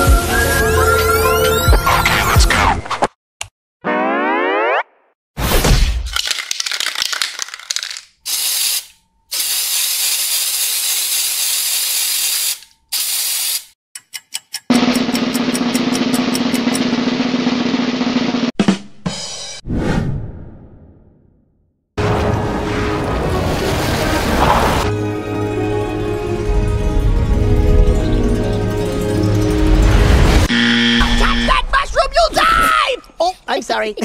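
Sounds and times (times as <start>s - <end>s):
cartoon boing glide: 3.8s - 5.1s
aerosol spray can hissing: 8.2s - 13.8s.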